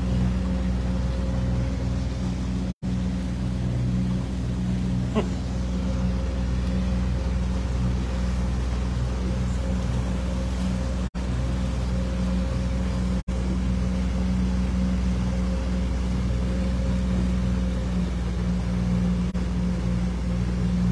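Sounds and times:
outboard motor running: 0.0 - 20.9
water wash and wind: 0.0 - 20.9.

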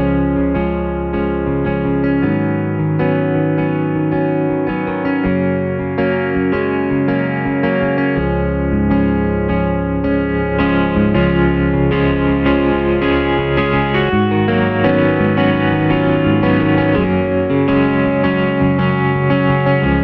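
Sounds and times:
moving bass line: 0.0 - 20.0
synthesizer guitar chords: 0.0 - 20.0.

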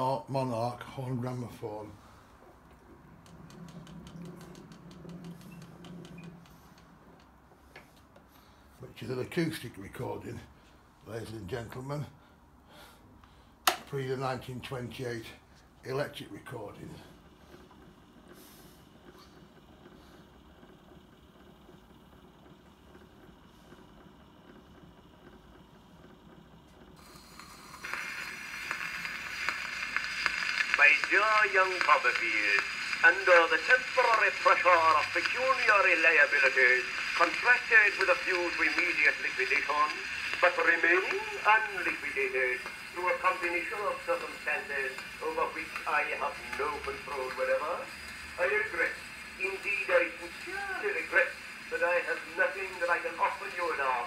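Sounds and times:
gramophone record hiss and crackle: 0.0 - 54.0.

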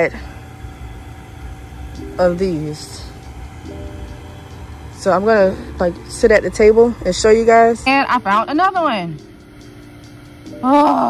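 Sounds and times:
faint steady hum: 0.0 - 11.0
low background rumble: 0.0 - 11.0.

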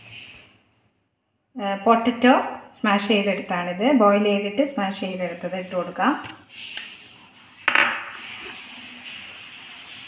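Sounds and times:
glass bowl clinking on steel bowl: 7.7 - 8.2.

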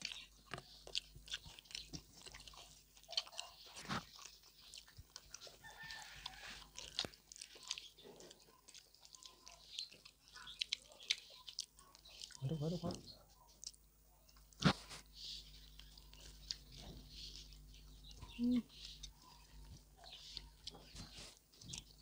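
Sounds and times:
wet chewing smacks: 0.0 - 22.0.

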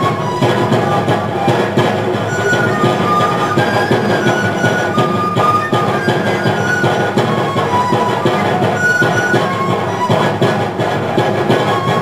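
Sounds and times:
cane flutes playing shrill melody: 0.0 - 12.0
large drum steady beat: 0.0 - 12.0.

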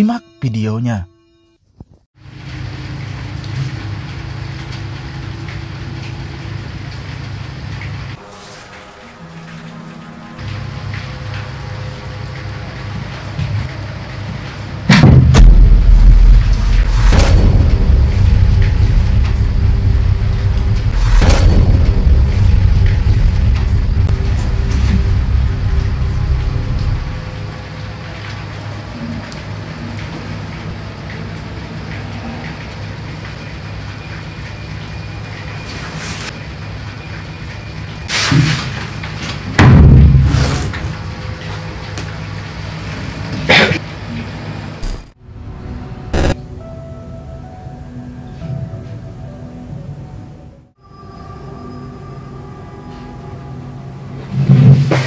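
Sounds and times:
dark horror music drone: 2.2 - 55.0
loud boom: 14.9 - 27.4, 46.2 - 46.5
sharp hits: 14.9 - 27.6, 46.1 - 46.5
heavy deep rumble: 14.9 - 28.4.

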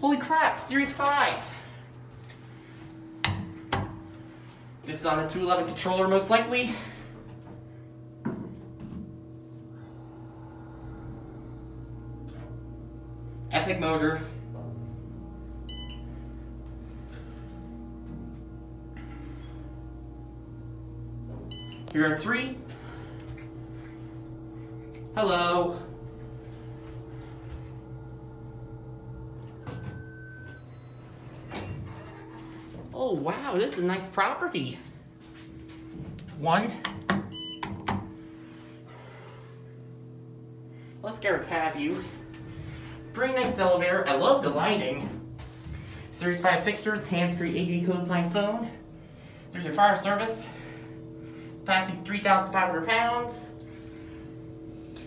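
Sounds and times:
elevator pump motor hum: 0.0 - 55.0
short electronic beep: 15.7 - 16.1, 21.5 - 21.9, 37.3 - 37.7
elevator doors sliding open: 29.2 - 33.0.

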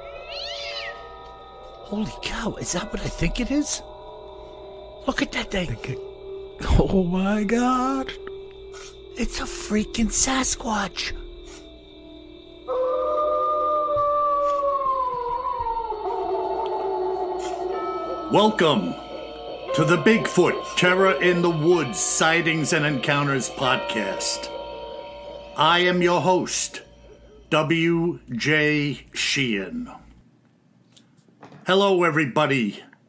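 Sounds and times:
high animal cry: 0.0 - 1.3
long howl: 0.0 - 5.0, 12.6 - 27.5
droning music: 0.0 - 28.3.

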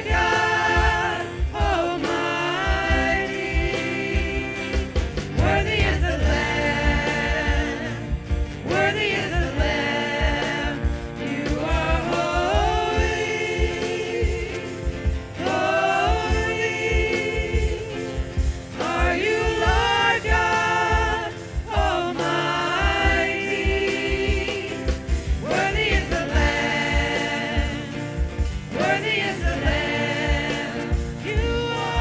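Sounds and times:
acoustic guitar: 0.0 - 32.0
keyboard: 0.0 - 32.0
steady drum beat: 0.0 - 32.0
women singing in harmony: 0.0 - 32.0.

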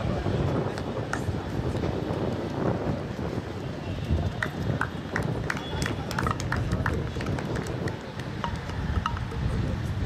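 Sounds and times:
wind rumble on microphone: 0.0 - 10.0
hand claps: 4.4 - 9.3.

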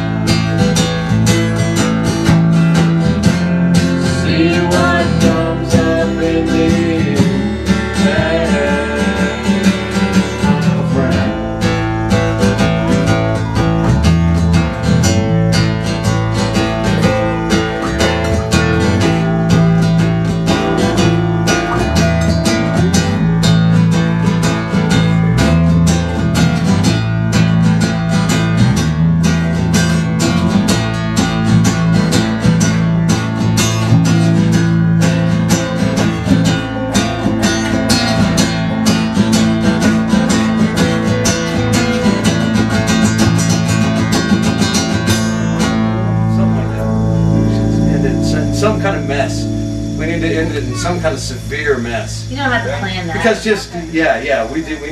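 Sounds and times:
acoustic guitar strummed: 0.0 - 54.9
bass guitar: 0.0 - 54.9
electric guitar: 0.0 - 54.9.

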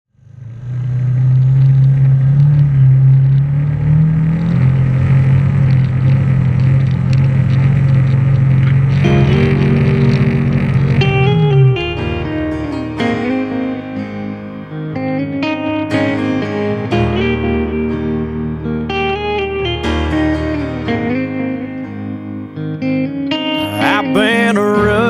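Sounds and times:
utility vehicle engine running: 0.1 - 13.4
electric guitar country-rock song: 8.6 - 25.0.

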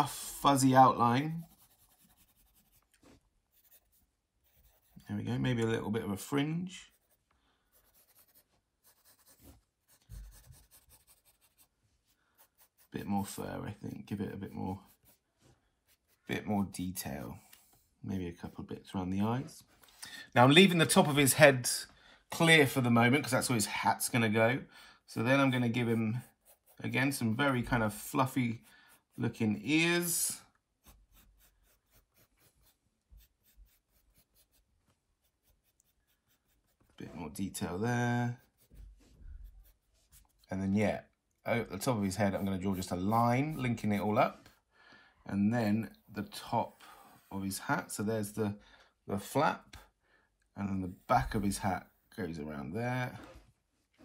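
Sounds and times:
pencil scratching on paper: 0.0 - 5.6, 6.2 - 18.7, 25.2 - 40.5, 41.7 - 44.6.

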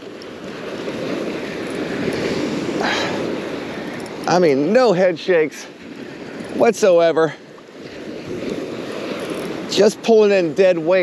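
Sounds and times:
small waves breaking on beach: 0.0 - 11.0.

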